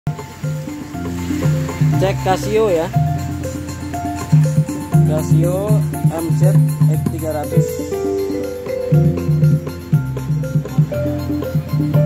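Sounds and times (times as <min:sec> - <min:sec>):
keyboard playing chords and bass: 0:00.1 - 0:12.0.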